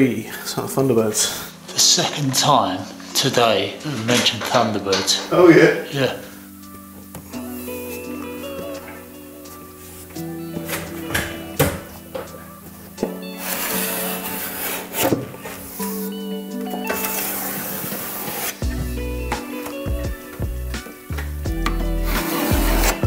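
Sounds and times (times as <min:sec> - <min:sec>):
music with held chords and beat: 0:06.3 - 0:13.9, 0:14.6 - 0:23.0
filling knife scraping adhesive: 0:22.1 - 0:23.0.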